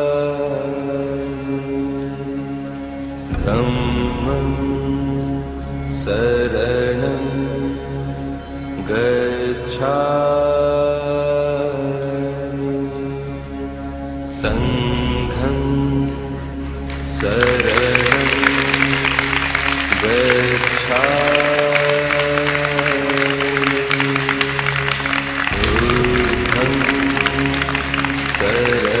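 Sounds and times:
devotional singing: 0.0 - 29.0
steady low drone: 0.0 - 29.0
audience clapping: 16.8 - 29.0.

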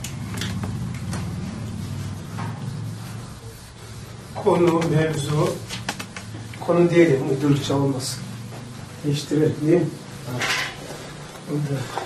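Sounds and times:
steady low hum: 0.0 - 12.0
marker scratching on whiteboard: 0.2 - 12.0.

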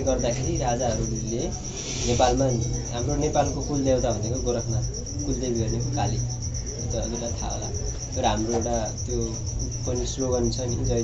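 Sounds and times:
low steady hum: 0.0 - 11.0
man talking: 0.0 - 11.0
rapidly pulsing high chirp: 0.0 - 11.0.

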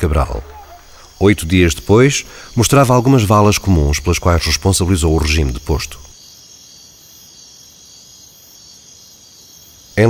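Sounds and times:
insects chirping: 0.0 - 10.0.

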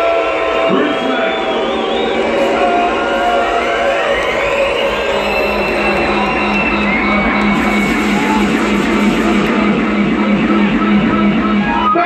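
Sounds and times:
festival crowd: 0.0 - 12.0
rising tone sweep: 4.0 - 11.7
pulsing bass line: 4.6 - 12.0.

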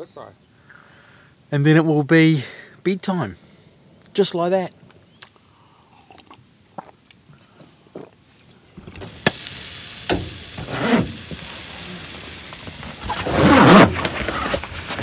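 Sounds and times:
meat sizzling on charcoal grill: 8.8 - 15.0
sharp crackles: 8.8 - 15.0.

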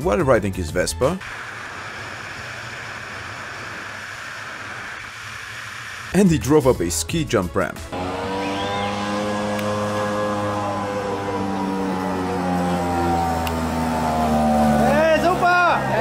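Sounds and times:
scooter engine running hard: 7.9 - 16.0
people shouting and cheering: 14.8 - 16.0.

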